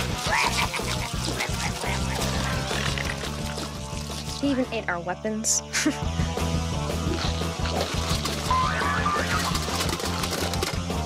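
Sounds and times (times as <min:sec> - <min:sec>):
pig monster squeals and grunts: 0:00.0 - 0:03.6, 0:07.1 - 0:10.1
background music with bass line: 0:00.0 - 0:11.0.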